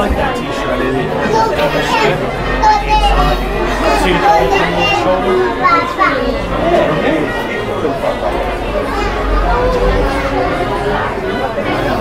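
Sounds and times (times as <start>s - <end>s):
chatter of shoppers: 0.0s - 12.0s.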